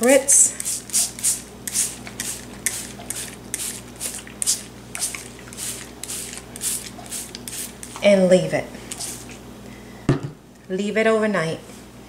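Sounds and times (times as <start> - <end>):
spray bottle spritzing: 0.6 - 8.0.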